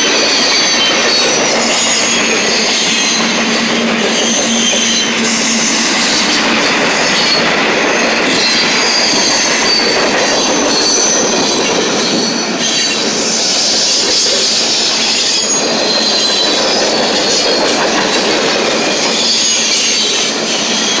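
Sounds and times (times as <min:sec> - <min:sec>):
freight train wheels rolling on rail: 0:00.0 - 0:21.0
high-pitched wheel squeal: 0:00.0 - 0:21.0.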